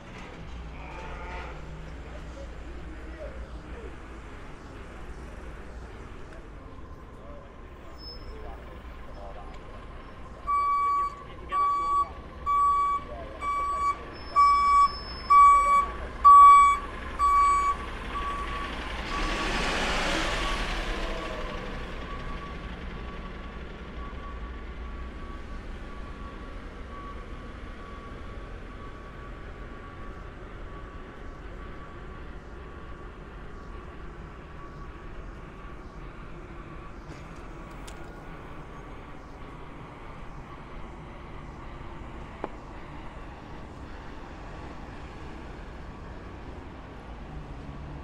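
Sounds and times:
low hum of traffic: 0.0s - 48.0s
truck reversing alarm beeping: 7.6s - 47.4s
vehicle passing: 14.6s - 23.5s.

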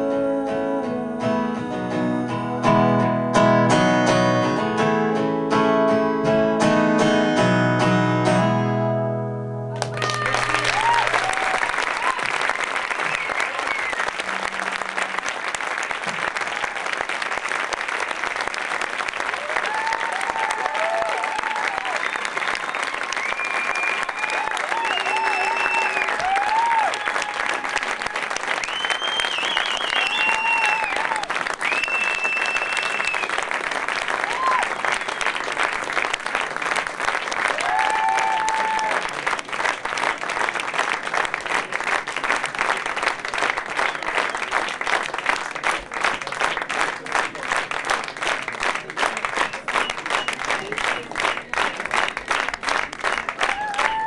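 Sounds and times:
audience applauding: 9.8s - 54.0s
shouts and whistles: 13.1s - 14.1s, 19.7s - 27.6s, 28.6s - 33.4s, 37.6s - 39.0s, 53.5s - 54.0s.

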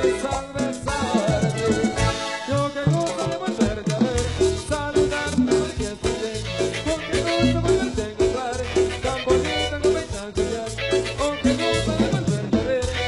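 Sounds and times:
marimba dance music: 0.0s - 13.0s.

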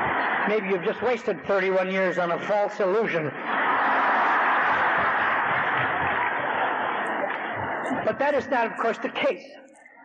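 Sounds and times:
large audience applauding: 0.0s - 2.4s, 3.0s - 8.6s.

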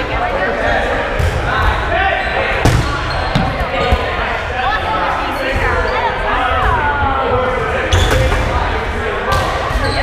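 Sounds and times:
players shouting and chattering: 0.0s - 10.0s.

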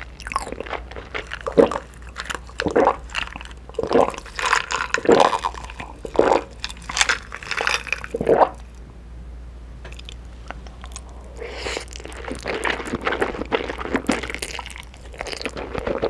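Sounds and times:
person gulping water: 1.4s - 1.9s, 2.6s - 3.1s, 3.8s - 4.2s, 4.8s - 6.5s, 8.1s - 8.6s.

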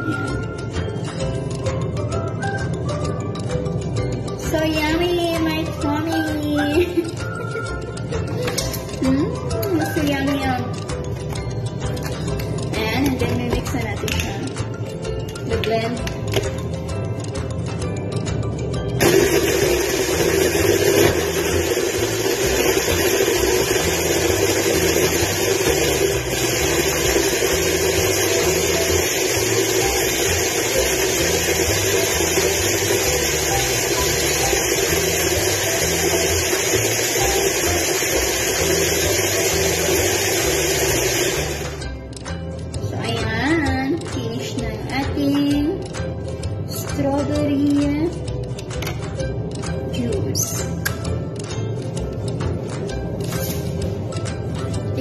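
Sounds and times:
hand blender whirring: 19.0s - 41.9s.

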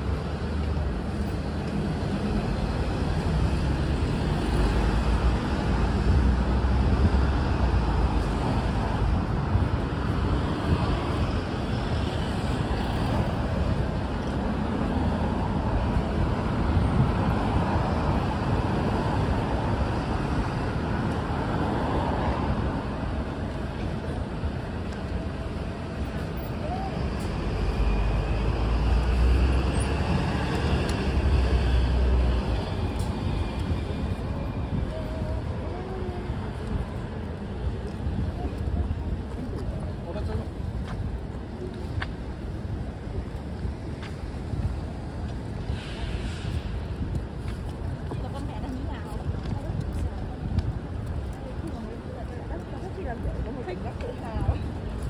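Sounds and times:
deep rumbles of vehicles: 0.0s - 55.0s
road traffic passing: 0.0s - 55.0s.

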